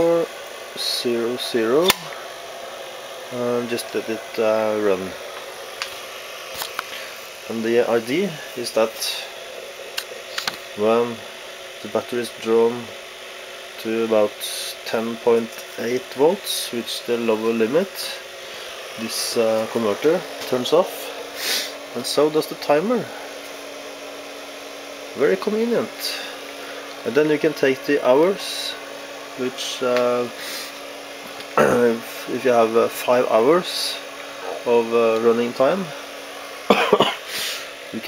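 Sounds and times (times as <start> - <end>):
faint background hum: 0.0 - 38.0.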